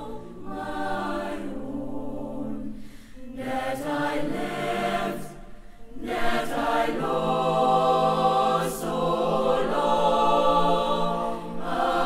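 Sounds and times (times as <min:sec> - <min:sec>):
choir singing held chords: 0:00.0 - 0:12.0.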